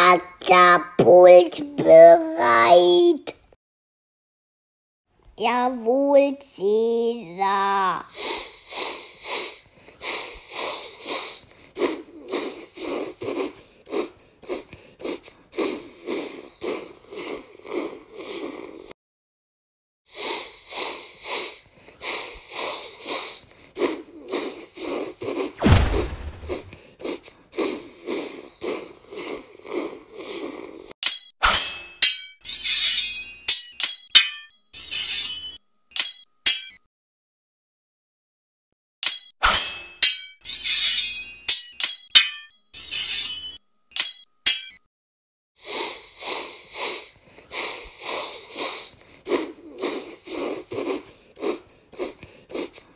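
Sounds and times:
deep thud: 25.6s - 26.8s.

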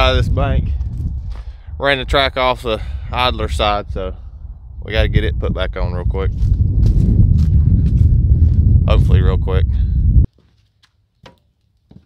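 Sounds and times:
wind buffeting microphone: 0.0s - 10.3s.

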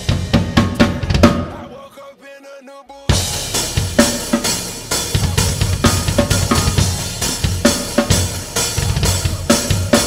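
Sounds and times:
drum kit groove: 0.0s - 1.8s, 3.1s - 10.0s
hip-hop backing track with heavy bass: 0.0s - 10.0s.

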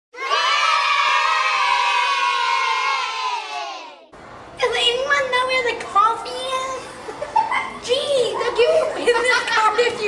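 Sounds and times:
children cheering: 0.2s - 4.1s.

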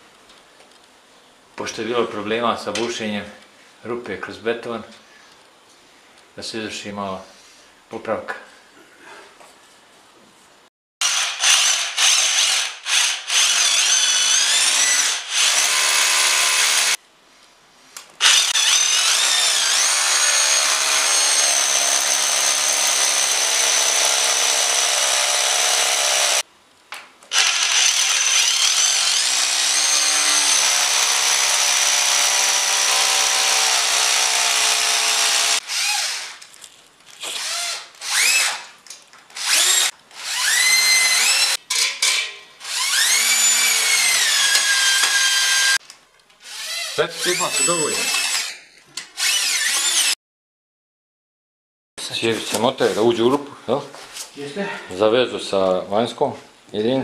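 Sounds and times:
cordless drill motor whine: 27.3s - 34.3s, 39.4s - 41.6s.

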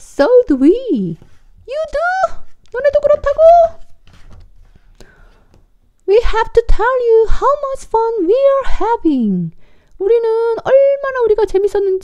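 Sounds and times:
paper page turning: 1.0s - 5.7s.

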